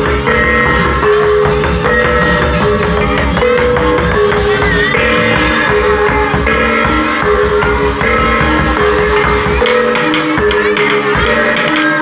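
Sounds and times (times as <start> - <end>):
barrel drum beaten: 0.0 - 12.0
hanging gongs struck in rhythm: 0.0 - 12.0.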